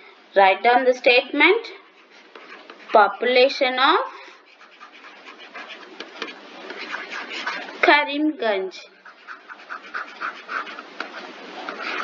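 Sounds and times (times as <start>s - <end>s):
faint hiss: 0.0s - 12.0s
stylus scratching on tablet screen: 1.8s - 8.0s, 8.9s - 12.0s.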